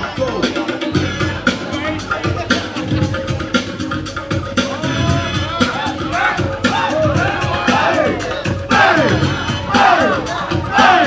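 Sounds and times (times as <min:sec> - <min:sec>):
break-beat music over loudspeakers: 0:00.0 - 0:11.0
crowd shouting: 0:04.9 - 0:11.0.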